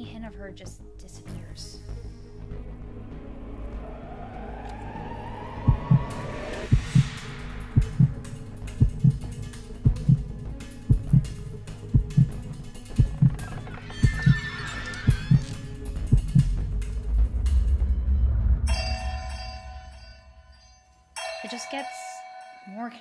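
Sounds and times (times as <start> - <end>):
eerie music drone: 1.8 - 9.8, 12.6 - 20.9
low rumble: 1.9 - 9.3, 15.1 - 20.6
heartbeat thumps: 5.5 - 14.4, 15.1 - 18.4
high ringing chime tones: 18.7 - 22.9.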